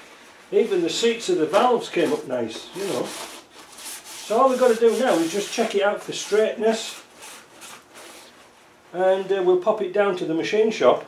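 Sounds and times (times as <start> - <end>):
paper towel wiping metal: 0.5 - 8.4.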